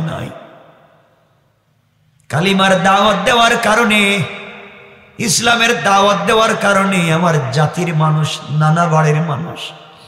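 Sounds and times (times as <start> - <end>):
man's amplified voice: 0.0 - 0.6, 2.2 - 10.0.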